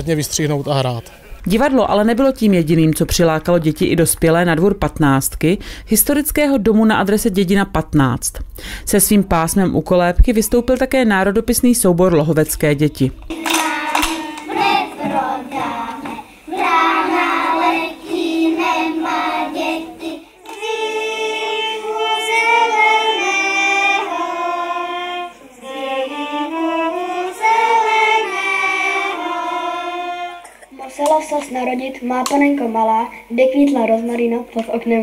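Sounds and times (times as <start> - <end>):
hand-clapping: 13.3 - 16.7
violins playing: 13.3 - 30.4
children singing folk song: 13.3 - 31.5.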